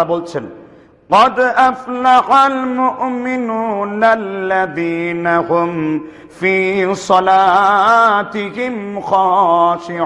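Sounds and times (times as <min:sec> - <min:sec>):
man chanting melodically: 0:00.0 - 0:10.0.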